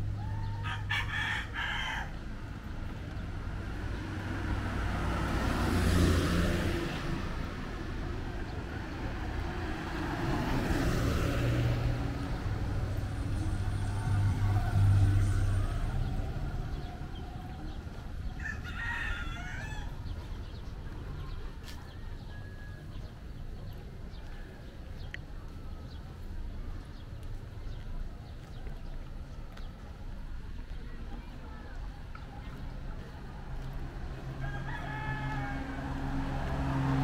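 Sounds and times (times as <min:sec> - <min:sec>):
road traffic passing: 0:00.0 - 0:37.0
rooster crowing: 0:00.2 - 0:02.2, 0:18.3 - 0:20.0, 0:34.4 - 0:36.3.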